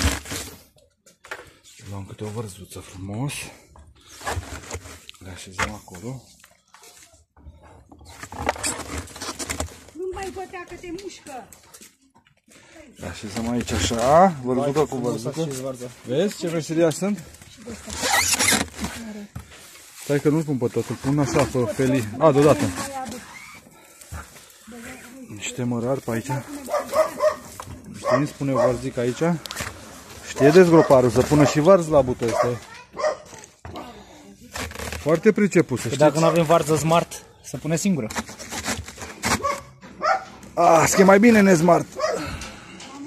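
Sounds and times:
cabbage leaves squeaking and rasping: 8.0 - 10.5, 17.6 - 19.2, 20.1 - 25.2, 26.1 - 33.5, 34.4 - 42.7.

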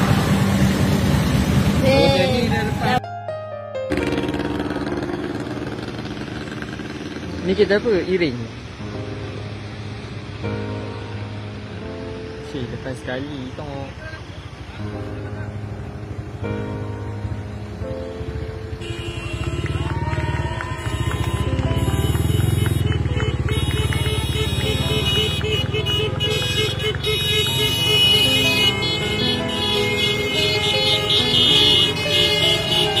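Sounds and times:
motorcycles and cars passing: 0.0 - 3.0, 3.9 - 33.0
vehicle horns: 18.7 - 33.0.

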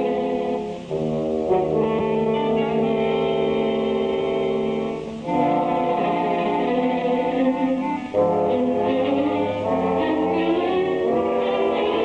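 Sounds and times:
orchestral brass chords: 0.0 - 12.0.

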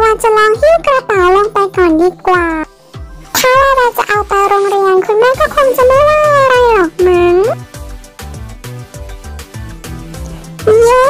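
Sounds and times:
light background music with beat: 0.0 - 11.0.

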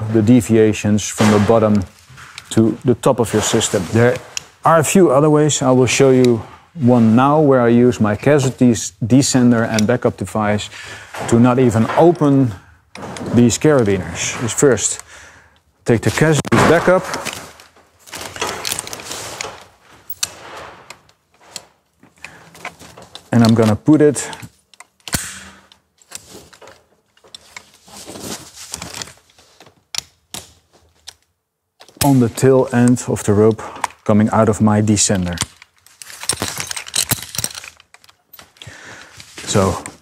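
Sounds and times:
rope and harness rustling: 1.3 - 15.1, 15.8 - 29.9, 33.6 - 40.0
metal hardware clicks: 16.3 - 27.9, 35.0 - 40.0.

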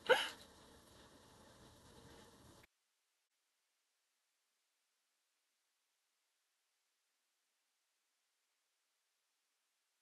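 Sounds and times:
faint room hiss: 0.0 - 2.7.

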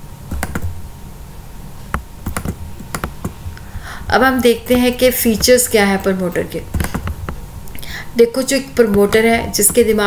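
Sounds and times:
low steady hum: 0.0 - 10.0
keyboard key clicks: 2.3 - 3.4, 6.7 - 7.4.

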